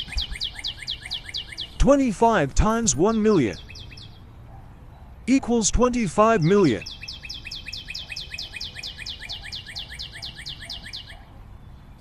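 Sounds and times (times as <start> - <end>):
trill of bird-like chirps: 0.0 - 1.8, 2.9 - 4.3, 6.6 - 11.3.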